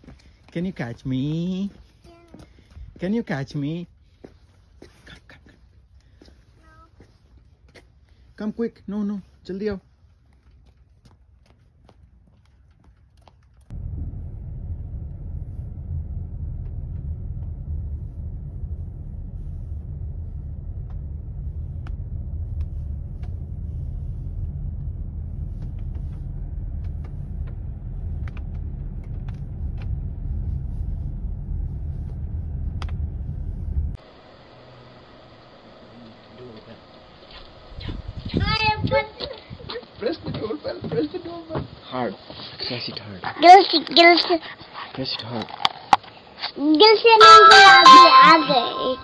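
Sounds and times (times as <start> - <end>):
car driving rumble from inside: 13.7 - 34.0.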